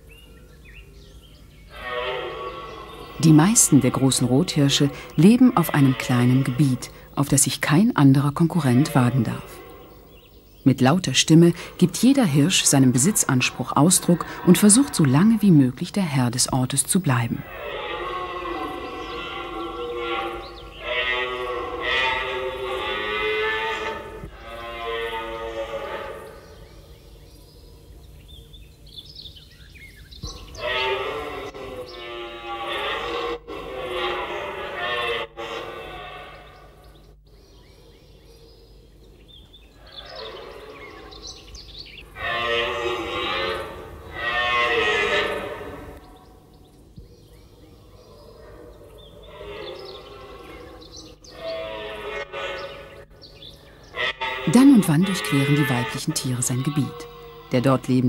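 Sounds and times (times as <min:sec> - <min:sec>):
deer stag roaring: 0:01.7 - 0:07.0, 0:11.5 - 0:15.4, 0:17.3 - 0:26.4, 0:30.6 - 0:36.8, 0:42.1 - 0:46.0, 0:53.9 - 0:58.0.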